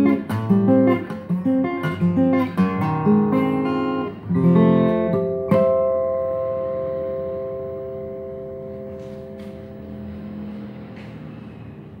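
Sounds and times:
acoustic guitar chord ringing: 0:00.0 - 0:11.1.

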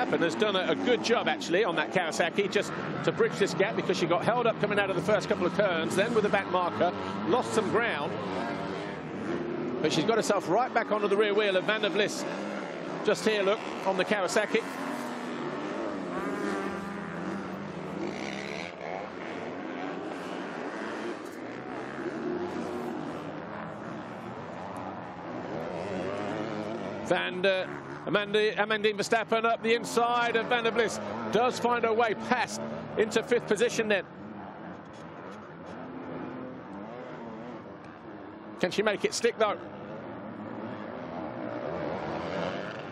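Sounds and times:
motocross bikes revving: 0:00.0 - 0:42.9.

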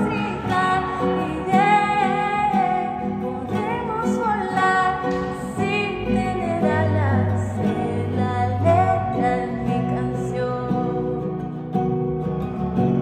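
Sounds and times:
woman singing pop ballad: 0:00.0 - 0:11.5
acoustic guitar: 0:00.0 - 0:13.0.

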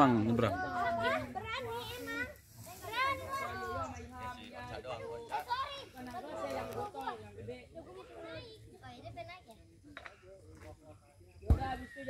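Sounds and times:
girls talking and calling out: 0:00.0 - 0:10.1.

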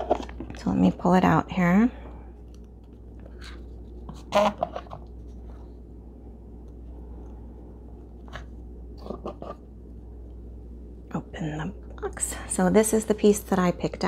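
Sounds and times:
steady low hum: 0:00.0 - 0:14.0.

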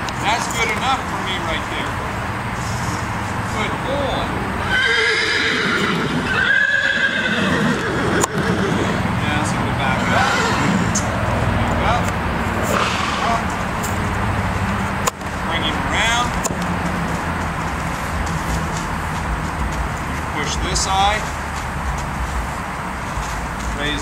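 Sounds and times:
horse whinnying: 0:04.6 - 0:09.1, 0:10.0 - 0:11.1, 0:12.7 - 0:13.5.

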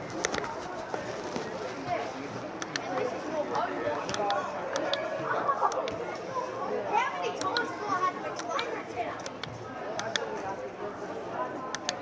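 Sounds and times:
sharp clicks: 0:02.6 - 0:03.1, 0:04.0 - 0:05.0, 0:07.4 - 0:07.7, 0:09.2 - 0:10.3, 0:11.7 - 0:12.0.

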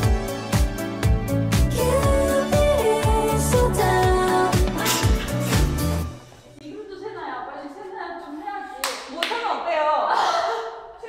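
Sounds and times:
young women talking: 0:06.6 - 0:11.0
sharp hand claps: 0:08.8 - 0:09.4.

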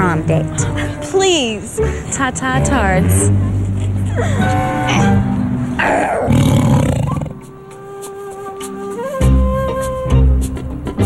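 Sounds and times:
music: 0:00.0 - 0:11.0
lion roaring: 0:05.8 - 0:07.5.

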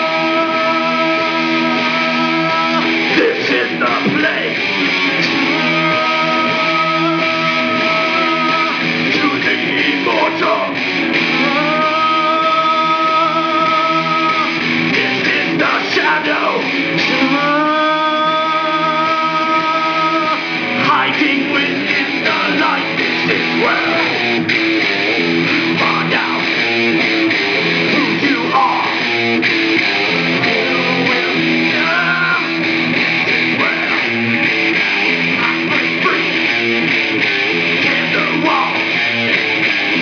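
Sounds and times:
man singing: 0:00.0 - 0:24.4, 0:25.4 - 0:27.0, 0:27.7 - 0:29.4, 0:30.1 - 0:34.5, 0:35.1 - 0:37.0, 0:37.7 - 0:40.0
electric guitar strumming: 0:00.0 - 0:40.0.

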